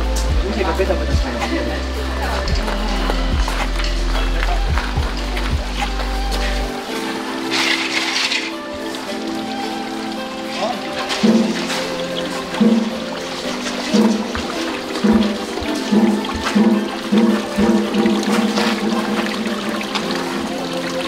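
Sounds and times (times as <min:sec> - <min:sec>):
background music with pulsing bass: 0:00.0 - 0:21.0
water pouring into stone pool: 0:00.0 - 0:21.0.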